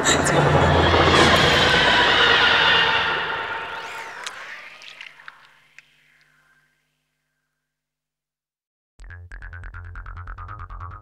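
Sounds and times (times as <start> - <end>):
electronic synth wash: 0.0 - 6.6.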